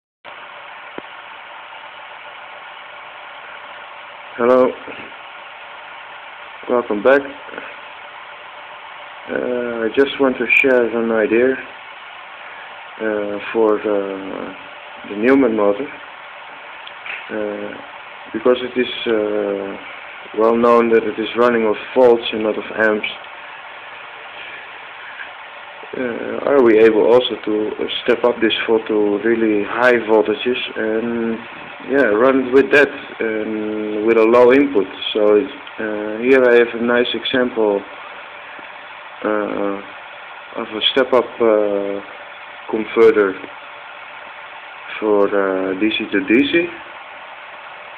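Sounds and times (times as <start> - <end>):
steady background hiss: 0.3 - 47.9.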